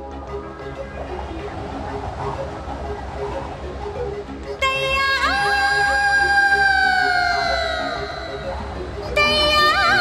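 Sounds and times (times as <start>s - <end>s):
soft repeating backing music: 0.0s - 10.0s.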